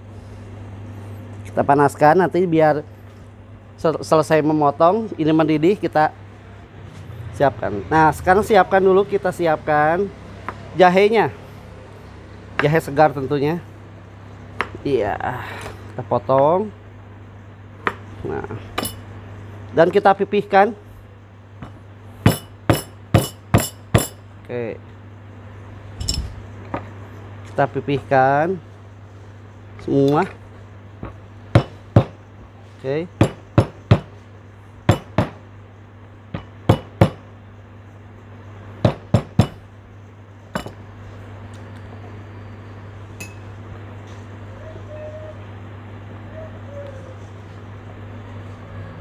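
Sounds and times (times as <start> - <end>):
steady low hum: 0.0 - 49.0
stone pestle pounding on wood: 21.6 - 24.2, 31.0 - 32.2, 33.2 - 34.2, 34.9 - 35.4, 36.3 - 37.3, 38.8 - 39.6.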